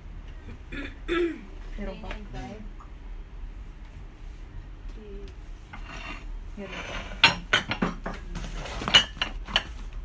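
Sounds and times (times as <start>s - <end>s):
ceramic plates clinking: 5.8s - 9.8s.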